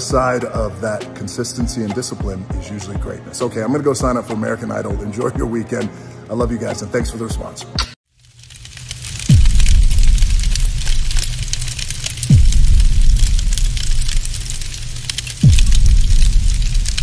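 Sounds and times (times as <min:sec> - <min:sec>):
steady crackle: 0:08.1 - 0:17.0
low rumble: 0:09.2 - 0:17.0
deep booms falling in pitch: 0:12.3 - 0:14.8, 0:15.4 - 0:17.0.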